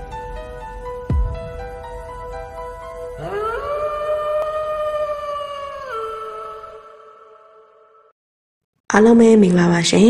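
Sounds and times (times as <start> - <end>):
wolf howl: 2.8 - 8.1.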